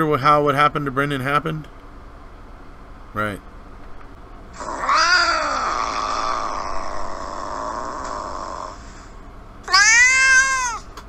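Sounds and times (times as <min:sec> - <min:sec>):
cat meowing: 0:04.6 - 0:08.7, 0:09.7 - 0:10.9.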